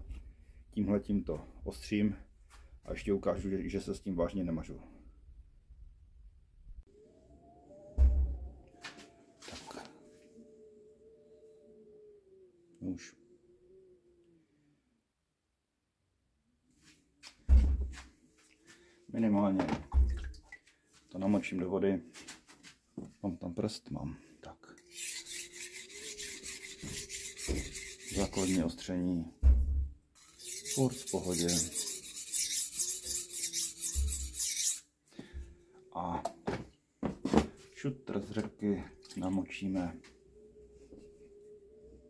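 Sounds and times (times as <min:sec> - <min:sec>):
knife scraping on whetstone: 0:24.8 - 0:28.7, 0:30.2 - 0:34.9.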